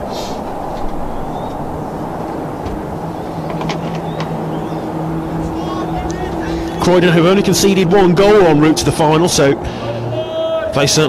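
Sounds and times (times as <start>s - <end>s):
low rumble: 0.0s - 10.9s.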